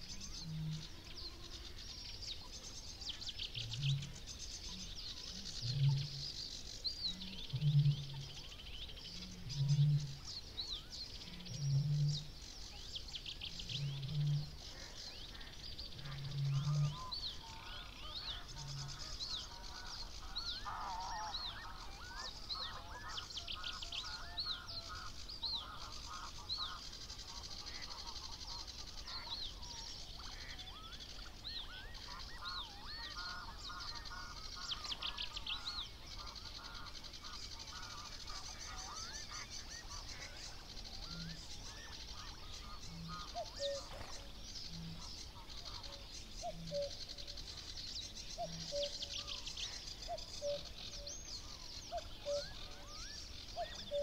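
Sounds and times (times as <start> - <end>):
chattering birdsong: 0.0 - 54.0
songbirds singing: 0.0 - 54.0.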